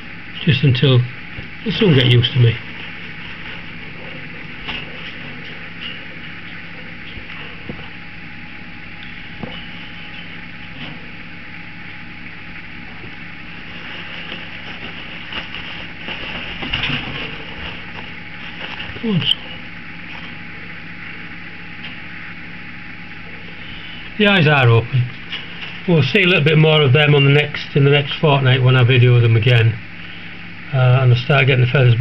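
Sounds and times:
low background hum: 0.0s - 32.0s
paper towel rustling: 1.6s - 8.0s, 12.8s - 20.8s, 23.5s - 28.2s.

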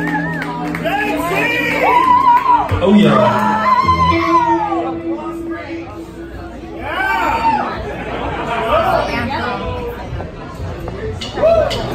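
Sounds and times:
people chattering: 0.0s - 11.9s.

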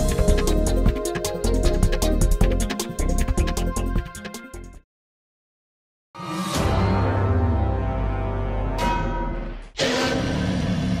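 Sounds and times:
music with held tones: 0.0s - 4.8s.

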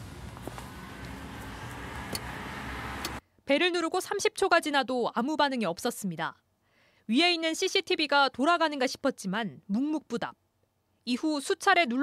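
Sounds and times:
outdoor low rumble: 0.0s - 3.2s.

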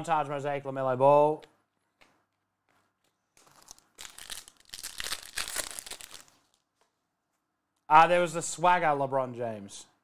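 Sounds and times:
plastic wrapper tearing and crinkling: 3.3s - 6.7s.

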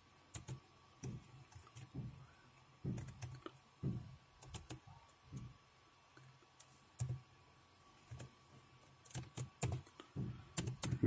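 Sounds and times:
faint computer keyboard keystrokes: 0.3s - 2.0s, 2.9s - 4.8s, 8.0s - 8.3s, 9.0s - 11.0s.

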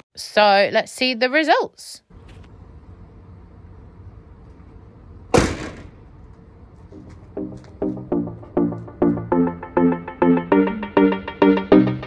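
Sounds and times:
low steady rumble: 2.1s - 9.9s
keyboard music: 6.9s - 12.0s.

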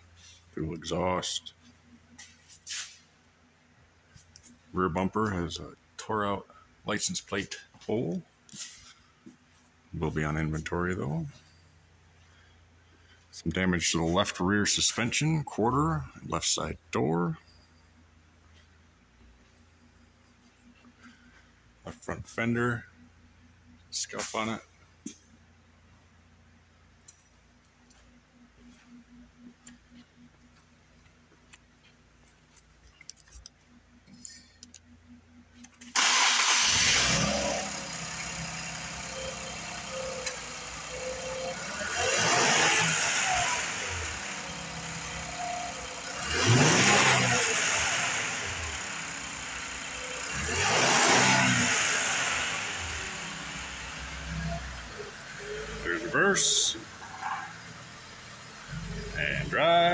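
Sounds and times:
car engine starting and idling: 32.5s - 59.9s
car engine revving: 36.0s - 59.9s.

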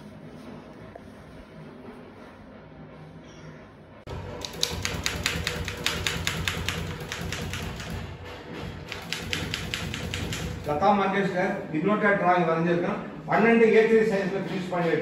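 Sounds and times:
typewriter keys striking: 4.4s - 10.8s.

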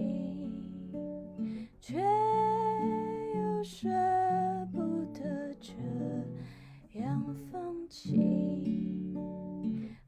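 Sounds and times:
acoustic guitar chords: 0.0s - 10.0s
woman singing softly: 0.0s - 10.0s.

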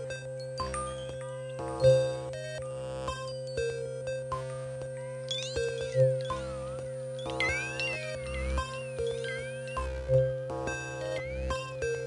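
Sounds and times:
electronic music: 7.3s - 11.4s.

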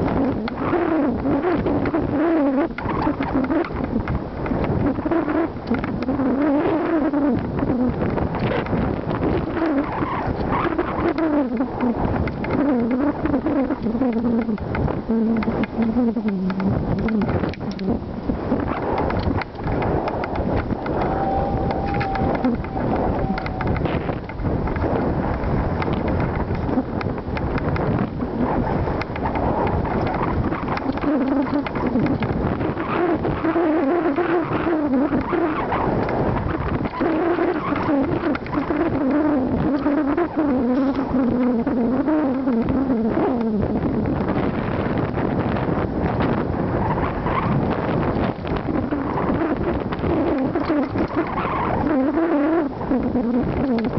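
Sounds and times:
wavering pitched tone: 19.7s - 24.3s.

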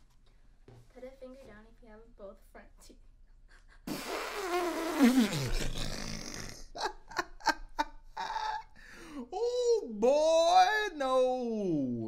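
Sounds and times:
person cackling laughter: 6.8s - 8.7s.

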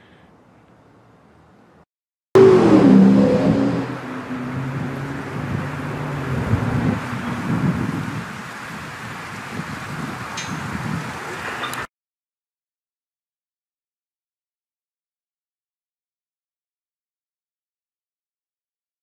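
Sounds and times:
vehicle driving past: 2.4s - 8.5s.

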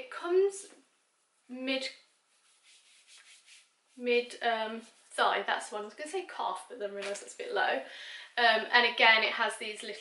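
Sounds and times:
fabric rustling: 0.9s - 4.0s
fabric swishes: 2.0s - 4.0s.

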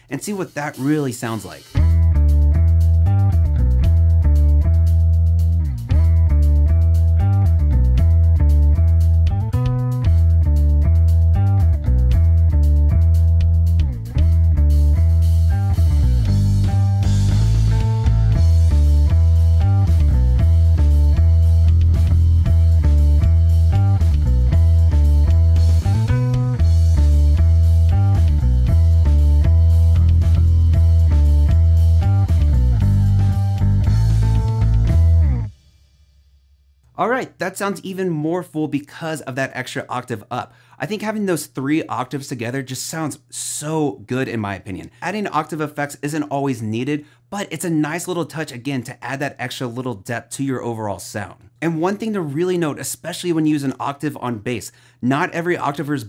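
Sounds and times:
electric bass riff with octave effect: 1.8s - 35.6s.

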